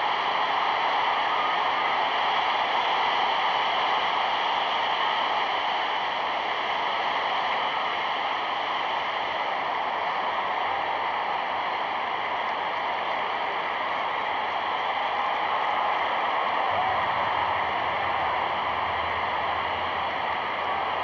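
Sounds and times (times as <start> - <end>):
film soundtrack hiss: 0.0 - 21.0.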